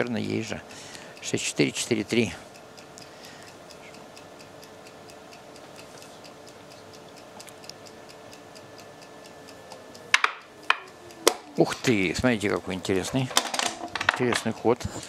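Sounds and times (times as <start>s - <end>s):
checkers clicking: 0.0s - 2.4s, 8.6s - 15.0s
clock ticking: 0.0s - 15.0s.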